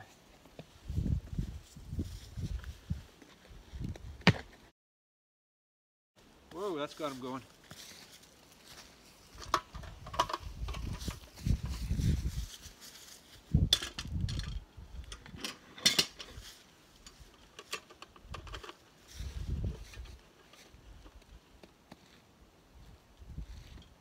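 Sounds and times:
metal clanks and clinks: 0:15.2 - 0:16.4.

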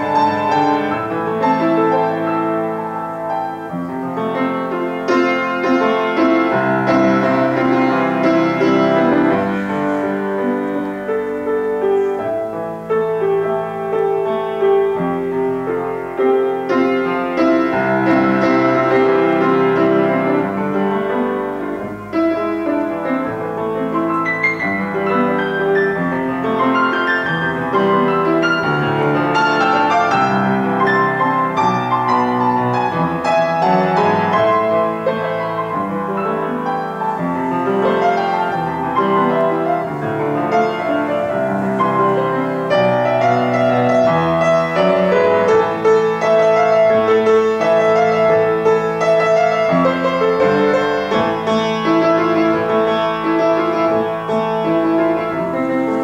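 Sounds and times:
grand piano playing: 0:00.0 - 0:56.0.

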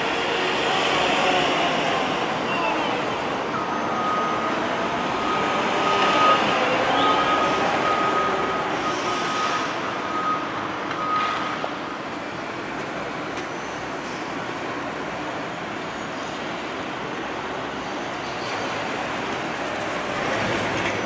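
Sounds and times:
site machinery and traffic noise: 0:00.0 - 0:21.0
reversing alarm beeping: 0:03.5 - 0:11.7.

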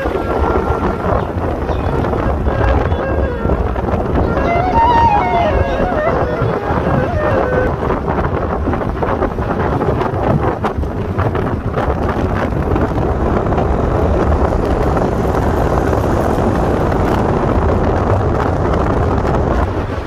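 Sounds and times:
road and tyre noise: 0:00.0 - 0:06.2, 0:06.8 - 0:20.0
wind buffeting microphone: 0:00.0 - 0:20.0.

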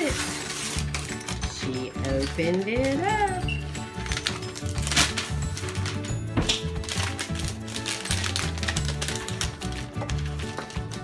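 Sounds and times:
wrapping paper crackling: 0:00.0 - 0:11.0
background music with bass line: 0:03.2 - 0:07.7.

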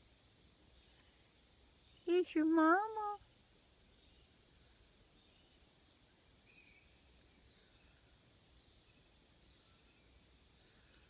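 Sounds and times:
outdoor night ambience: 0:00.0 - 0:11.0.

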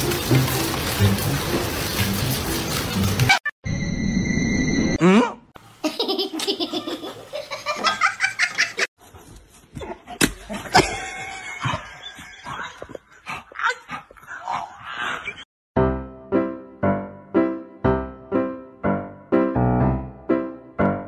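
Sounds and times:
people laughing: 0:10.5 - 0:12.9.

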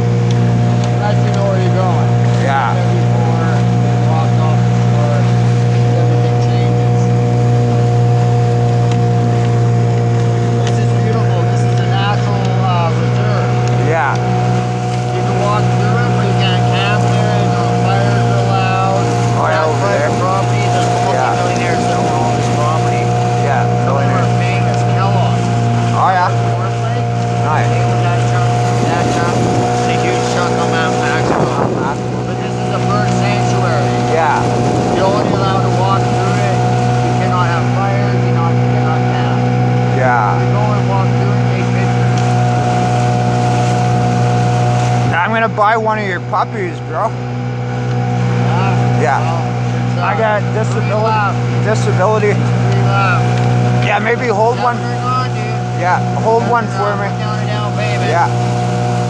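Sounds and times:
motorboat engine droning: 0:00.0 - 0:59.0.

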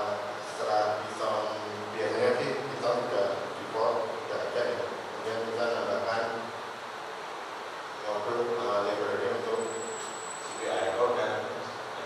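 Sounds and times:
high-pitched whine: 0:08.0 - 0:12.0.

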